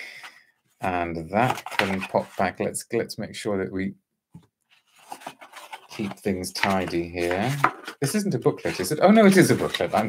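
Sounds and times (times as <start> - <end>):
cardboard scraping and rustling: 4.8 - 10.0.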